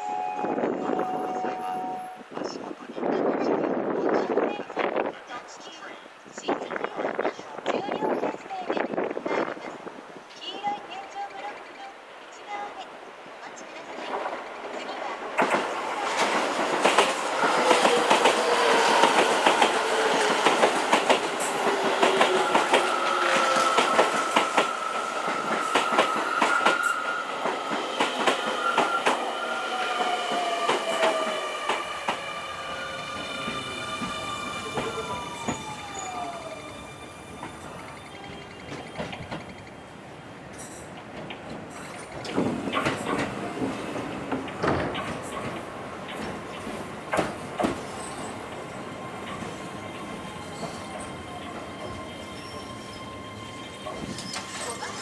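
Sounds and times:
second train approaching: 0:00.0 - 0:02.9, 0:03.8 - 0:55.0
train wheels clicking over rail joints: 0:15.4 - 0:26.8, 0:40.5 - 0:52.0
train whine falling in pitch: 0:17.3 - 0:39.4
train wheels squealing: 0:21.6 - 0:40.9, 0:47.8 - 0:55.0.

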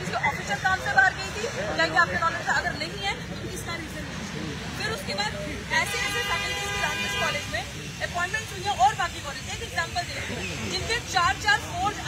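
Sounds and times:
woman talking: 0:00.0 - 0:04.1
vehicle horn: 0:05.8 - 0:07.6.

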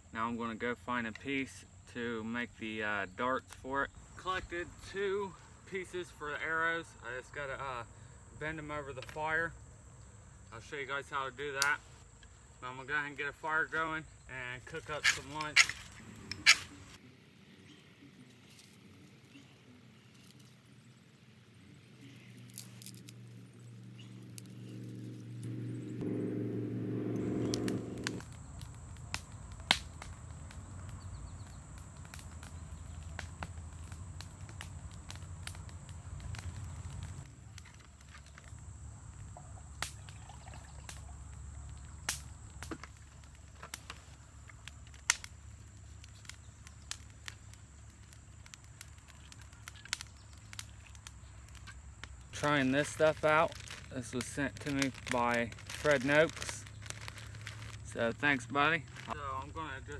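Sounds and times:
campfire crackling and snapping: 0:11.5 - 0:59.9
low hum: 0:23.0 - 0:28.4.

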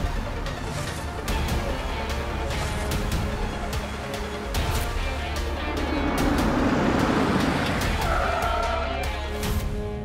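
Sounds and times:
car engine and tyre noise: 0:00.0 - 0:09.8.

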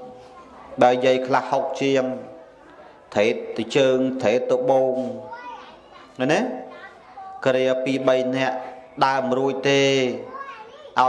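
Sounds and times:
man preaching: 0:00.8 - 0:02.4, 0:03.1 - 0:05.3, 0:06.2 - 0:06.6, 0:07.4 - 0:10.3.

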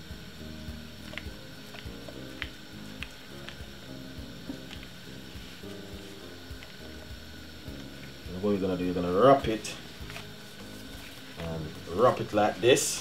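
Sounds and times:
quiet background music: 0:00.0 - 0:13.0.

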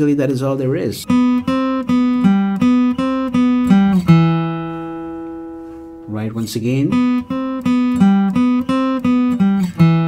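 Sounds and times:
acoustic guitar picked notes: 0:00.1 - 0:10.0.

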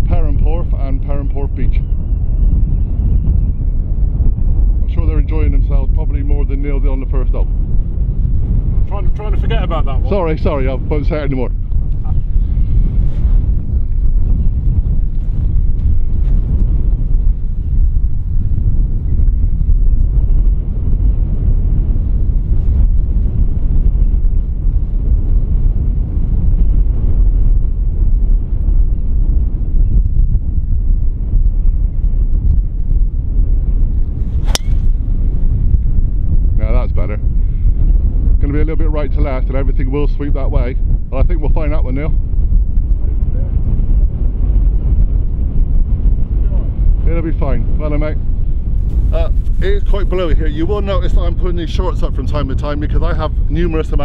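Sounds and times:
wind buffeting microphone: 0:00.0 - 0:54.0
golf club striking ball: 0:34.3 - 0:35.0.

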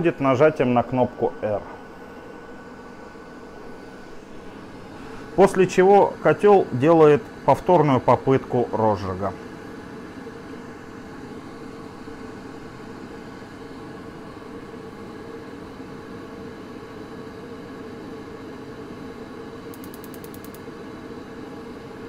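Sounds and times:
gas boiler fan and pump humming: 0:00.0 - 0:22.0
spark igniter clicking: 0:19.7 - 0:20.6.

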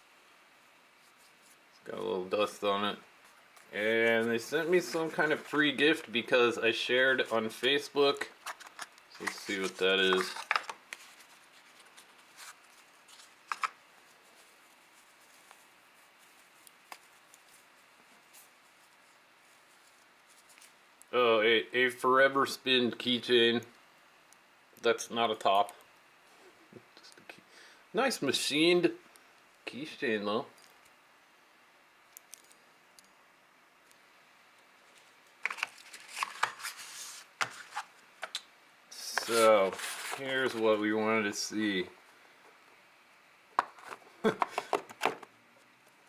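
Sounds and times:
cardboard and cloth rustling: 0:07.5 - 0:20.7, 0:39.2 - 0:40.7.

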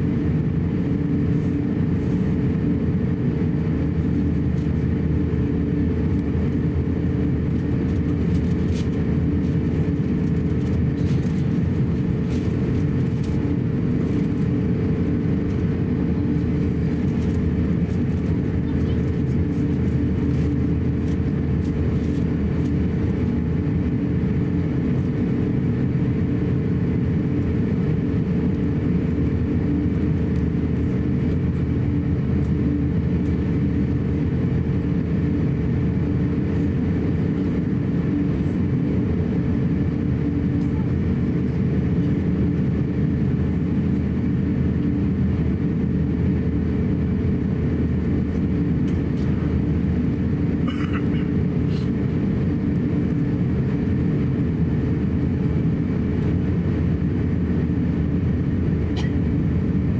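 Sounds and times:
aircraft cabin engine rumble: 0:00.0 - 0:59.9.

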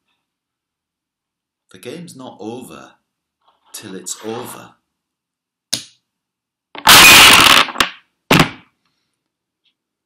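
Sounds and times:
wooden block tower collapsing: 0:06.8 - 0:08.7.

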